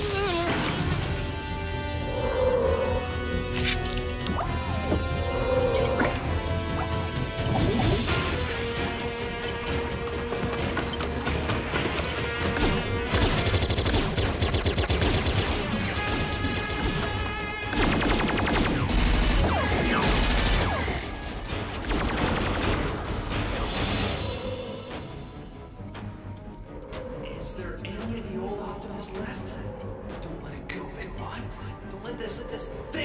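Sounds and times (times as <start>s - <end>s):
dramatic cartoon action music: 0.0s - 33.0s.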